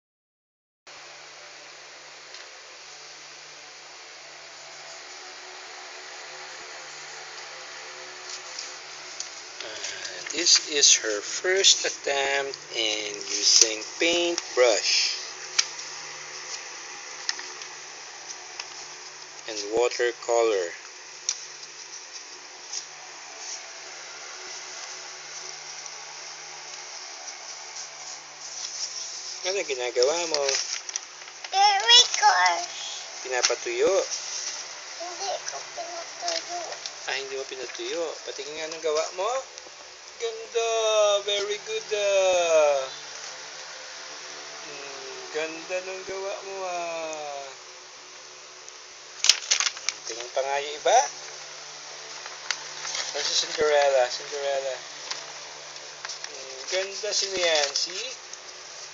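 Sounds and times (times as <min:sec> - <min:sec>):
room noise hiss: 0:00.9 - 0:58.9.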